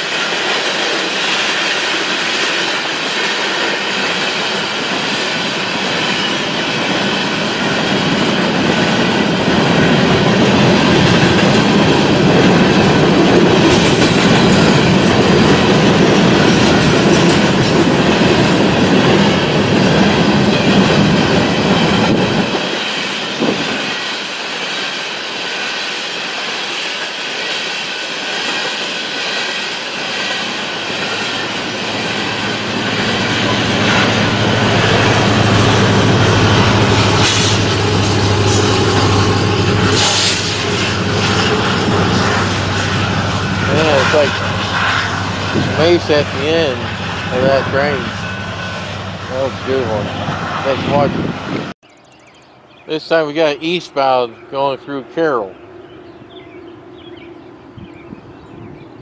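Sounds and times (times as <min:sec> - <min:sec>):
train wheels clacking on rails: 0:00.0 - 0:50.5.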